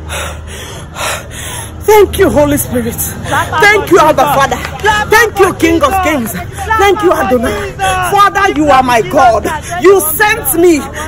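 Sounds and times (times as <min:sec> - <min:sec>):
woman gasping breaths: 0:00.0 - 0:01.8
woman speaking: 0:01.8 - 0:11.0.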